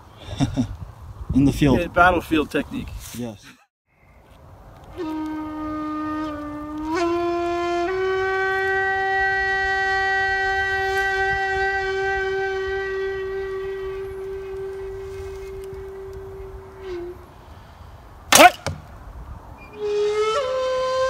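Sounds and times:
held wind instrument note: 4.9 - 18.7, 19.6 - 21.0
wind instrument note sliding up: 5.0 - 17.2.

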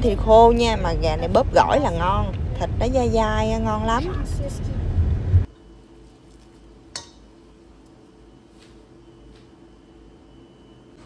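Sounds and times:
loud low rumble: 0.0 - 5.5
faint steady hum: 0.0 - 11.0
light clink against ceramic bowl: 7.0 - 7.2.

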